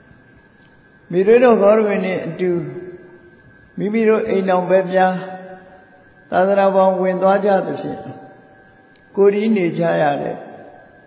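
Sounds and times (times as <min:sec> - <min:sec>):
man chanting: 0:01.1 - 0:03.2, 0:03.8 - 0:08.5, 0:09.1 - 0:11.0.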